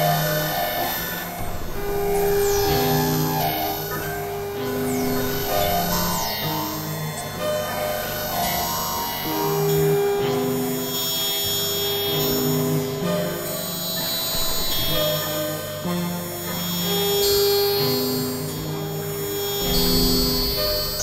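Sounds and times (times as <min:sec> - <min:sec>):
steady high tones: 0:01.1 - 0:10.0
held synth tones changing pitch: 0:01.4 - 0:08.7.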